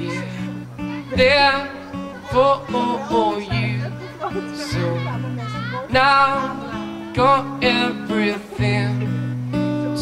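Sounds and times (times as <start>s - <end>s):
voices singing: 0.0s - 9.2s
amplified acoustic guitar chords: 0.0s - 10.0s.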